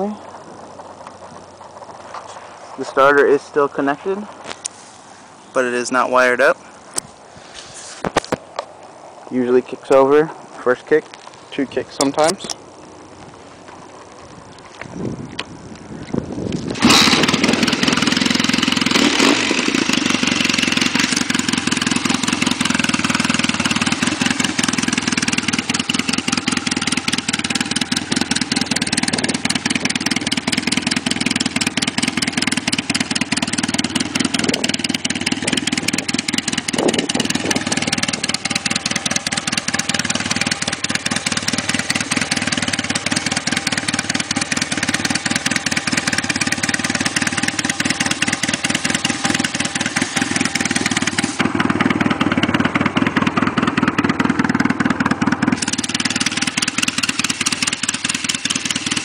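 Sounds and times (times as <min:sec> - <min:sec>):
motorcycle engine running: 0:00.0 - 0:09.8, 0:10.4 - 0:59.0.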